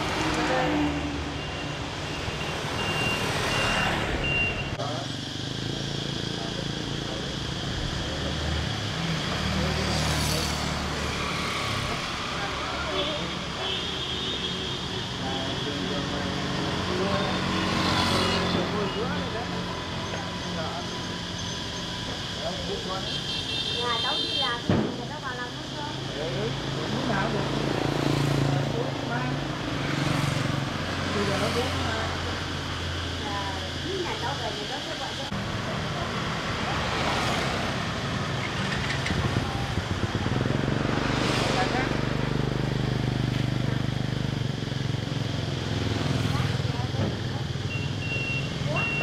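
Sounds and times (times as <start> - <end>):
road traffic passing: 0.0 - 49.0
voices in background: 3.6 - 49.0.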